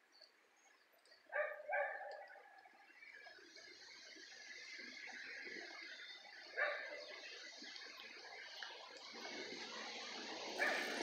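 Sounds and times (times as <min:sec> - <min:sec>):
dog barking: 0:01.3 - 0:02.4, 0:06.6 - 0:07.0, 0:10.6 - 0:11.0.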